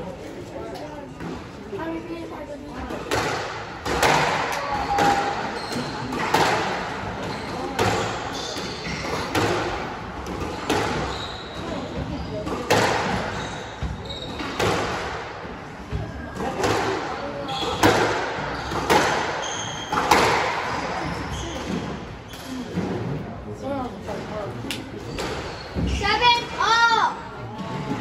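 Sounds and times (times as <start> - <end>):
squash ball hitting rackets and walls: 2.9 - 23.0.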